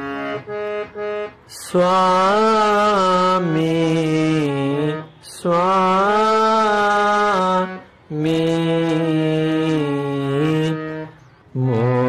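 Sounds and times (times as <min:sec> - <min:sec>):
harmonium melody: 0:00.0 - 0:12.0.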